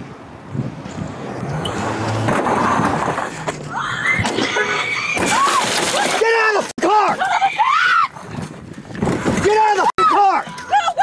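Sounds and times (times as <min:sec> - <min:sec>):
body camera rattling and rustling: 0:08.2 - 0:09.8.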